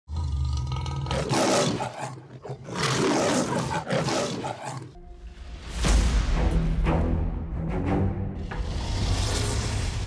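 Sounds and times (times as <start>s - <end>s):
lion roaring: 0.1s - 5.0s.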